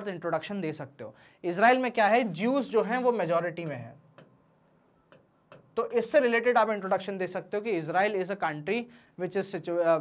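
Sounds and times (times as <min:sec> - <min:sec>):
man speaking: 0:00.0 - 0:04.1, 0:05.6 - 0:10.0.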